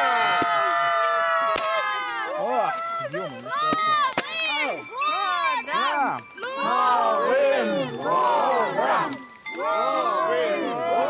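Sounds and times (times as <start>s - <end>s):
people calling out: 1.5s - 11.0s.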